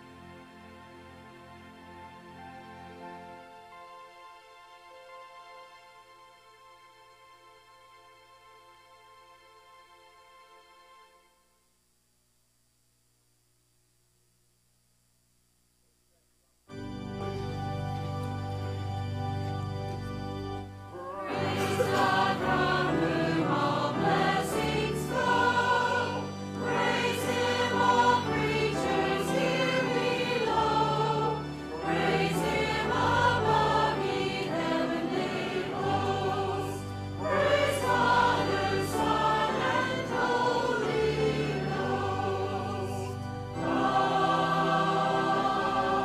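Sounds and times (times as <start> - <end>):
low instrumental accompaniment: 16.7 - 46.0
choir singing a hymn: 20.8 - 46.0.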